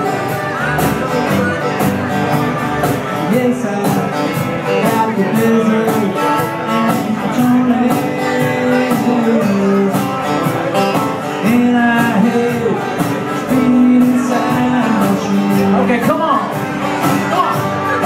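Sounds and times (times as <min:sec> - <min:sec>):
acoustic guitars strumming: 0:00.0 - 0:18.0
bending lead melody: 0:00.0 - 0:18.0.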